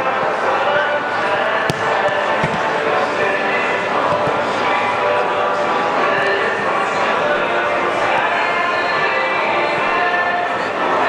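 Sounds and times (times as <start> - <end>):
crowd shouting and chatter: 0.0 - 11.0.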